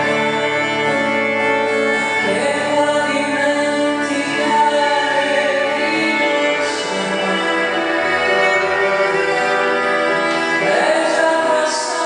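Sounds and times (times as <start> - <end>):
acoustic guitar: 0.0 - 12.0
violin: 0.0 - 12.0
woman singing: 1.9 - 9.0, 10.5 - 12.0.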